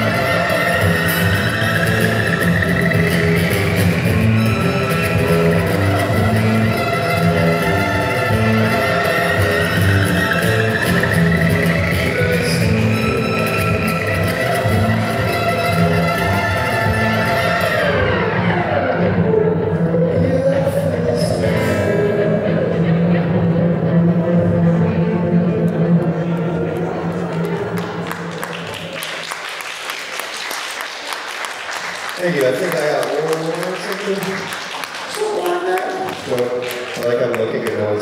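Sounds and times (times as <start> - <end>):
acoustic guitar picking: 0.0 - 27.0.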